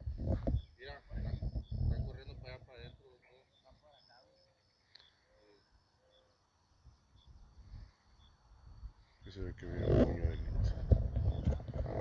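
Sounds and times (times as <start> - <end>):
wind buffeting microphone: 0.0 - 2.9, 9.6 - 12.0.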